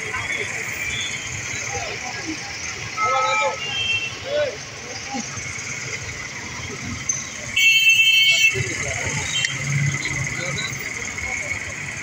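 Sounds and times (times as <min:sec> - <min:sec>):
road traffic hum: 0:00.0 - 0:12.0
voices talking and calling out: 0:00.0 - 0:12.0.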